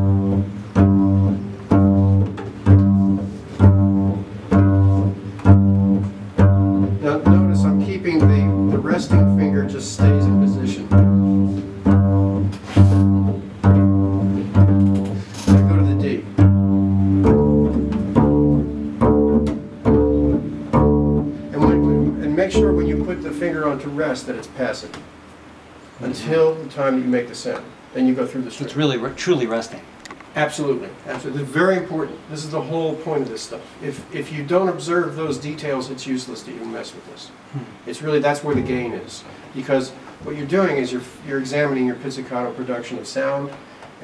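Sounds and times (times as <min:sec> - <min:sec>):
double basses plucked pizzicato: 0:00.0 - 0:24.2.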